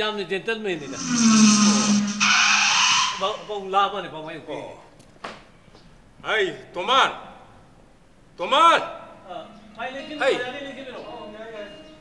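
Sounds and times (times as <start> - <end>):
low falling hum: 0.8 - 3.5
harsh hiss: 0.8 - 3.6.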